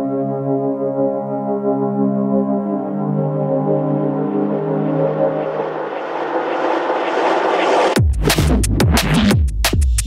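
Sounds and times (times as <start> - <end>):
held synth chords: 0.0 - 8.0
rising whooshing noise sweep: 3.7 - 8.0.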